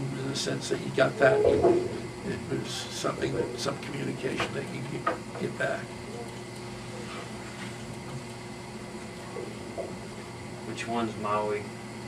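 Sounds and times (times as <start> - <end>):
low hum: 1.0 - 7.0.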